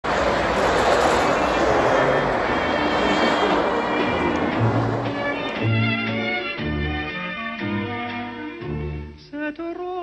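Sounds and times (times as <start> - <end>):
tyres rushing on ice: 0.0 - 5.8.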